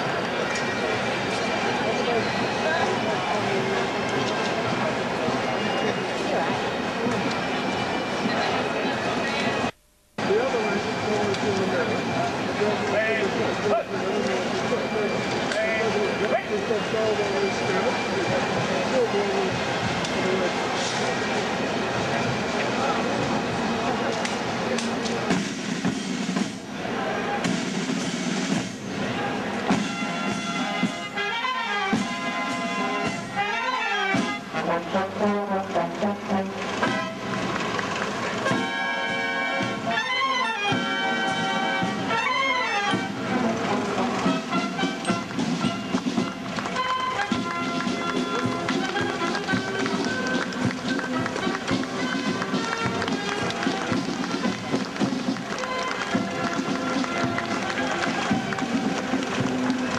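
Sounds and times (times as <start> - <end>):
marching brass band: 0.0 - 59.9
side drums: 21.9 - 34.7, 39.6 - 59.9.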